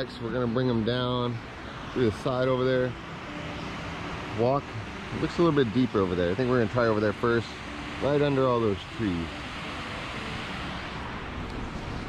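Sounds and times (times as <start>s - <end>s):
river water pouring over dam: 0.0s - 12.0s.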